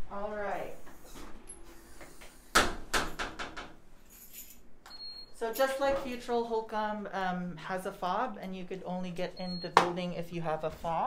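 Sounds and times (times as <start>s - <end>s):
keys jingling: 4.0s - 4.7s.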